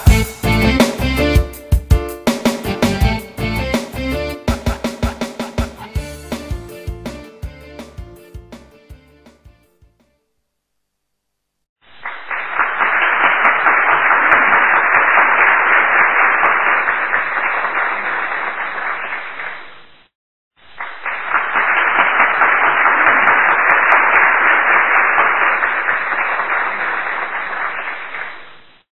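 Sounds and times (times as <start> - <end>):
audience applause: 12.3 - 19.7, 20.8 - 28.6.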